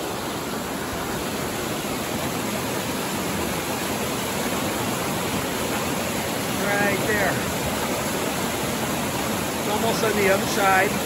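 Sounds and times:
whitewater rushing over rocks: 0.0s - 11.0s.

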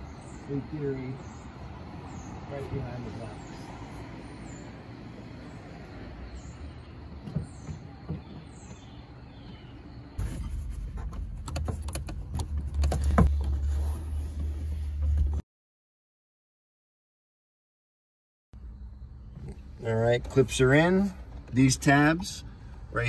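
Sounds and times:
soft knocks on plastic panel: 7.2s - 9.6s.

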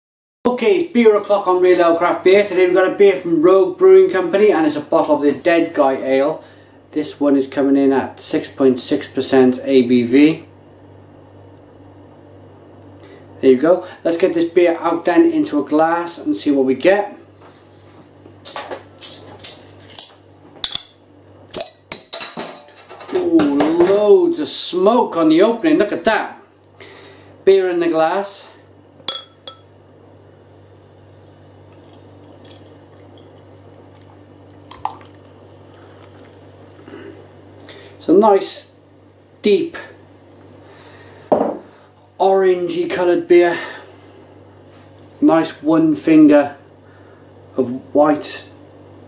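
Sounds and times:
low steady hum: 0.5s - 49.0s
bottle knock on counter: 41.3s - 41.6s.

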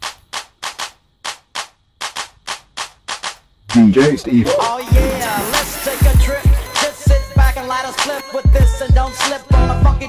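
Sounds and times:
sharp clap-like hits: 0.0s - 8.2s.

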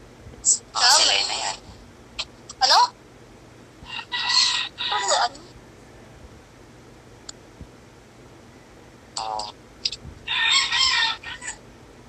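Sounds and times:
rooster crowing: 3.8s - 5.3s, 10.2s - 11.6s.

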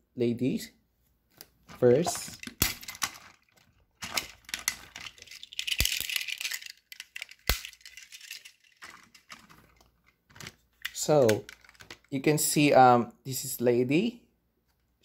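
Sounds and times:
plastic toy train clicking and rattling: 1.9s - 12.1s.

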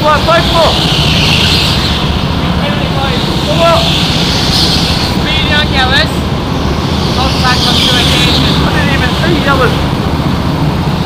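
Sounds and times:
go-kart engine running: 0.0s - 11.0s.

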